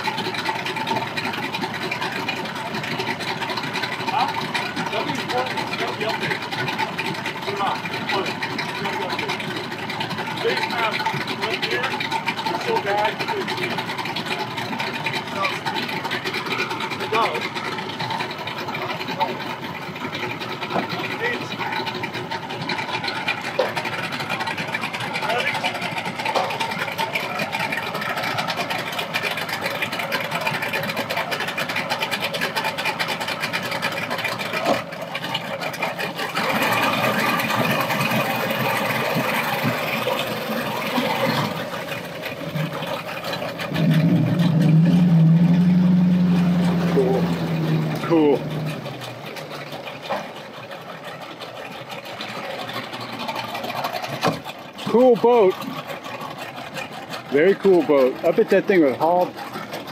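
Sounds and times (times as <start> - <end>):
outboard motor running: 0.0 - 59.9.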